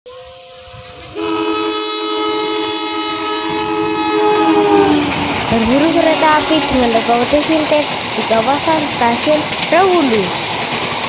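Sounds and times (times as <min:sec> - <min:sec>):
locomotive air horn: 0:00.1 - 0:07.3.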